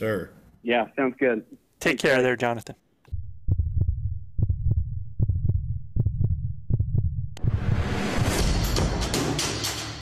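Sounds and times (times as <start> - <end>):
heartbeat thumps: 3.1 - 7.8
low rumbling drone: 3.1 - 8.5
music: 7.8 - 10.0.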